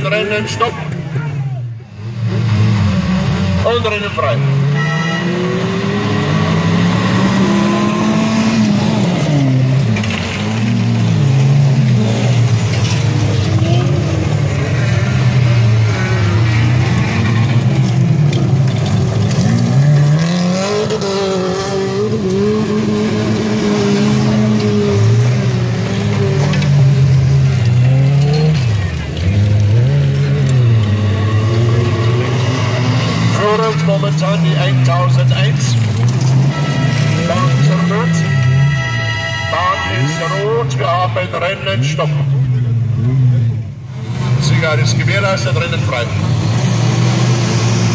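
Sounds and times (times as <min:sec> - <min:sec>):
stock car engines racing: 0:00.0 - 0:47.9.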